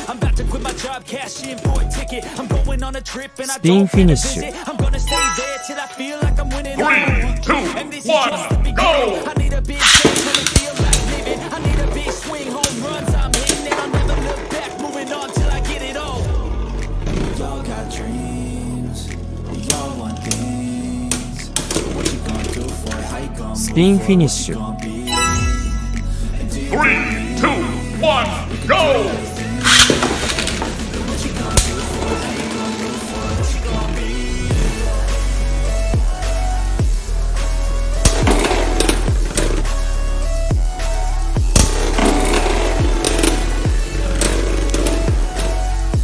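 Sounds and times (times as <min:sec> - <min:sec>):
hip-hop backing music: 0:00.0 - 0:46.0
spinning tops clashing clicks: 0:09.8 - 0:15.3, 0:29.6 - 0:30.8
spinning tops launched ripping: 0:09.8 - 0:15.4, 0:29.6 - 0:33.2, 0:38.0 - 0:39.9, 0:41.5 - 0:45.9
spinning tops scraping plastic: 0:09.8 - 0:16.0, 0:21.1 - 0:23.2, 0:29.6 - 0:33.4, 0:38.0 - 0:40.0, 0:41.5 - 0:46.0.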